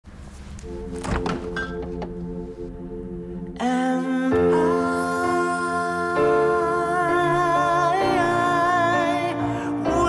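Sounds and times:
soft sustained music chords: 0.1 - 10.0
fridge door thunks: 1.0 - 2.2.

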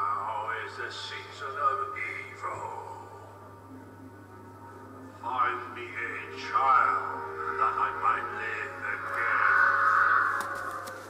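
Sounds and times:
harsh raspy sound effect: 8.4 - 10.9.

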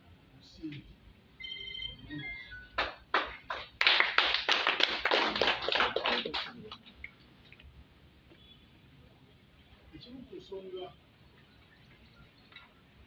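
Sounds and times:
electronic jingle of high beeps: 1.4 - 2.8
people clapping: 2.8 - 6.9.

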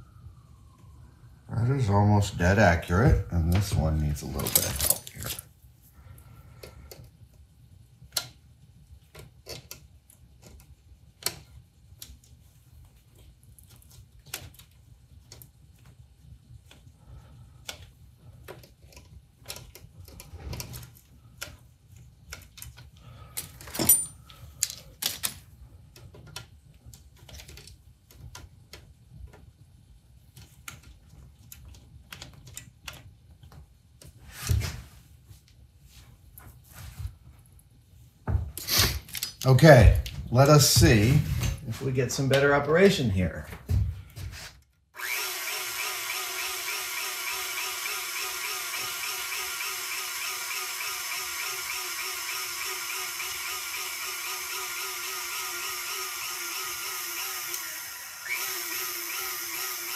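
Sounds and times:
tools clicking on metal: 4.4 - 5.4.

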